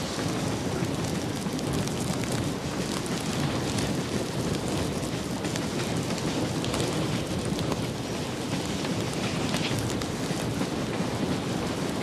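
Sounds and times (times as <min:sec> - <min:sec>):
steam train rumble: 0:00.0 - 0:12.0.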